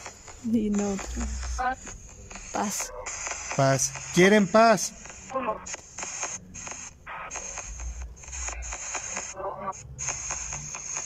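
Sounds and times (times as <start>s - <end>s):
choppy static bursts from phone: 0.0s - 11.0s.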